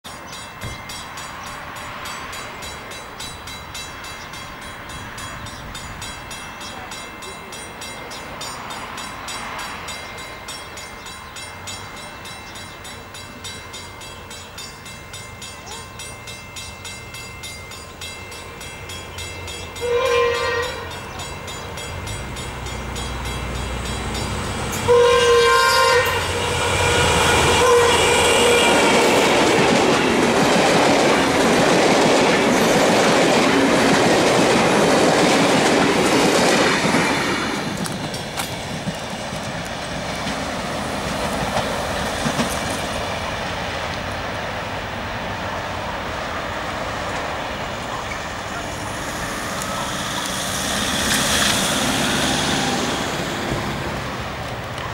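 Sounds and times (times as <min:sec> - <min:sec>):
diesel locomotive engine running: 0:00.6 - 0:54.9
train horn blast: 0:19.7 - 0:21.2, 0:24.5 - 0:29.5
carriage wheels clacking on rails: 0:28.6 - 0:44.6.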